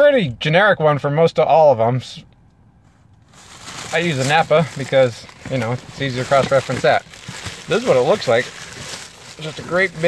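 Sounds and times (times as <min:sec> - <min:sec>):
plastic bag crinkling: 0:03.3 - 0:10.0.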